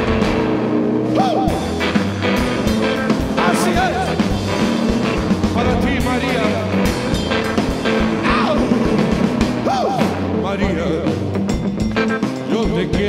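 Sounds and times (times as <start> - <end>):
drum kit: 0.0 - 13.0
electric guitar: 0.0 - 13.0
person singing: 12.5 - 13.0.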